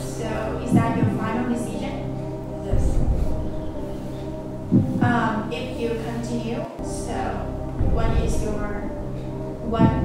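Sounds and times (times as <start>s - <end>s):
low throbbing pulse: 0.0s - 10.0s
suspense synth drone: 0.0s - 10.0s.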